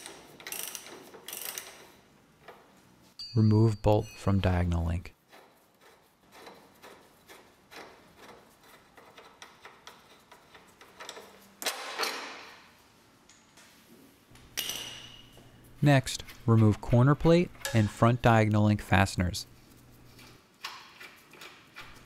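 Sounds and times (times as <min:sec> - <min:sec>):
metal bolt scrape: 0:16.1 - 0:18.2.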